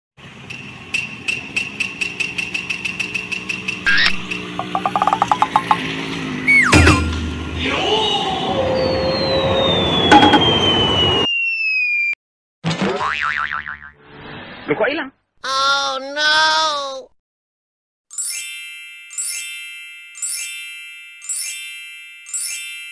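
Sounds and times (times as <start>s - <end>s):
rapid even ticking: 1.8s - 5.8s
springy boing: 3.9s - 5.8s, 12.9s - 14.0s
long falling whistle: 8.3s - 12.2s.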